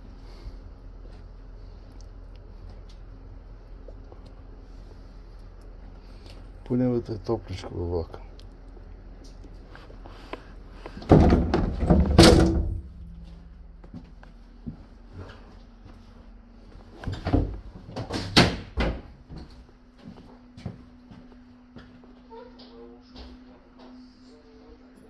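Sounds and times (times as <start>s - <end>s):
train door latching with metallic clatter: 11.0s - 12.9s
carriage door banging shut: 11.0s - 13.0s.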